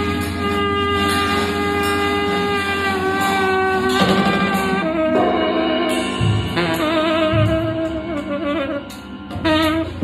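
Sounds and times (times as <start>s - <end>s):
steady low drone: 0.0s - 10.0s
tenor saxophone sustained note: 0.0s - 10.0s.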